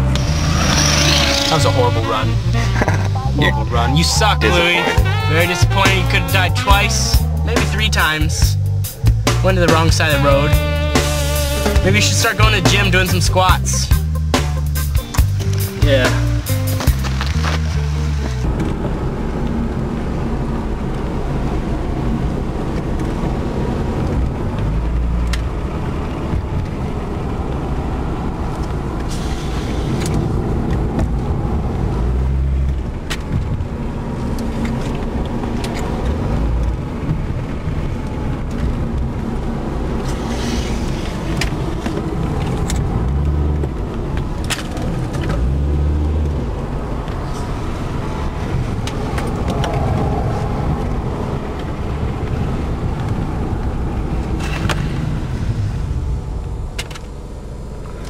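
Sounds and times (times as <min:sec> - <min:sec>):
engine and road rumble: 0:00.0 - 0:58.0.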